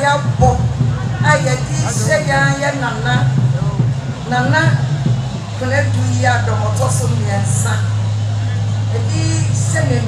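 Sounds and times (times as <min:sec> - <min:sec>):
woman speaking over public address: 0:00.0 - 0:08.0, 0:08.8 - 0:10.0
loud steady low hum: 0:00.0 - 0:10.0.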